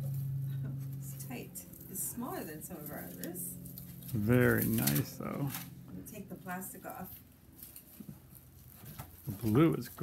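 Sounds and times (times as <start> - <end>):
soft crinkles: 0.0 - 10.0
canvas rustling: 6.4 - 10.0.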